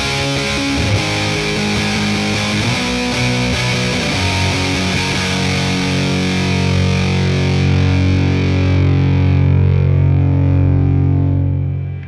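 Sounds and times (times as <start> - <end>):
distorted electric guitar chord ringing: 0.0 - 12.0.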